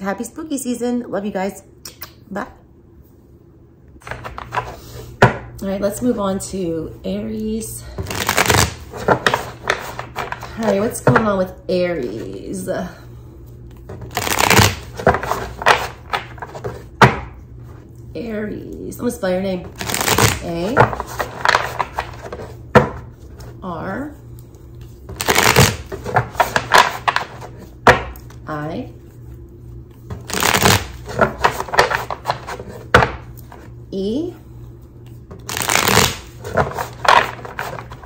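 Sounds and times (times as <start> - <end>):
cards riffle shuffling: 8.0 - 10.6, 14.0 - 16.8, 19.8 - 22.5, 24.8 - 27.7, 30.2 - 32.8, 35.4 - 38.0.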